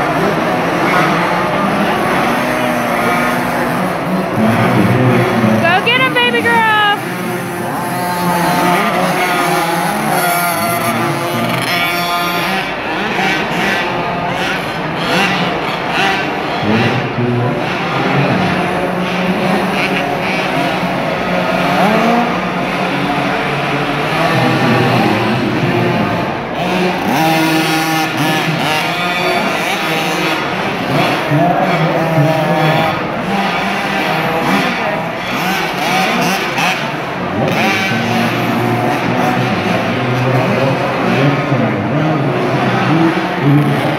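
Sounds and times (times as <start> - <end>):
dirt bike engines revving: 0.0 - 43.9.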